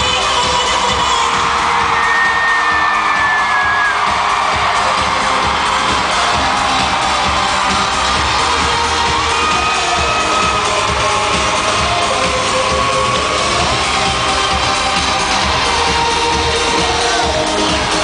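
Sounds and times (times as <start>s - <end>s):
crowd cheering and screaming: 0.0s - 18.0s
loud dance-pop music: 0.0s - 18.0s.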